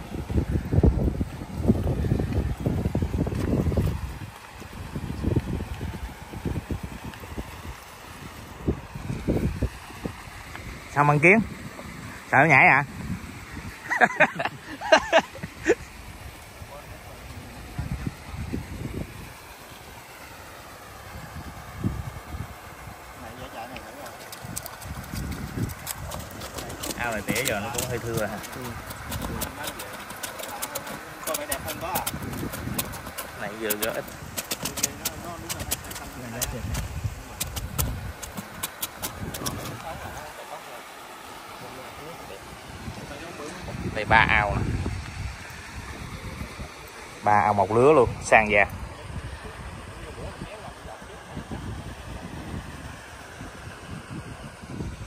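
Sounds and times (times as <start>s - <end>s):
wind buffeting microphone: 0.0s - 40.4s, 41.6s - 55.0s.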